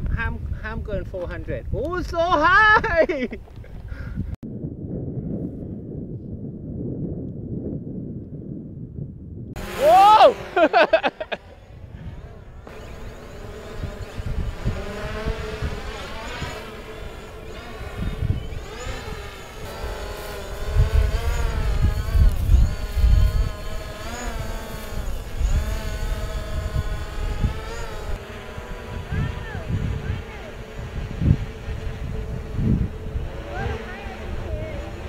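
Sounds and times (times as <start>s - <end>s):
wind gusts on microphone: 0.0s - 35.0s
quadcopter drone buzzing: 9.6s - 35.0s.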